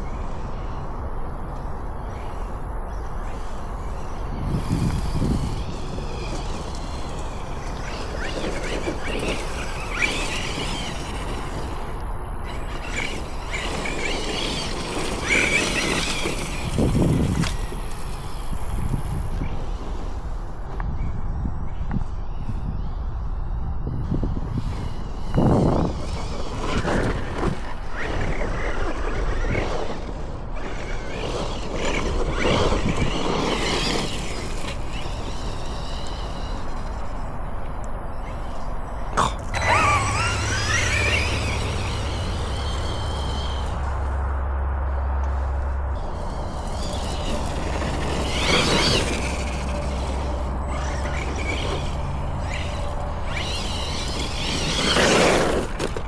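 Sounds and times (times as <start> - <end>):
electric motor whine: 2.9 - 19.8, 24.1 - 28.4, 39.4 - 44.5, 45.2 - 56.0.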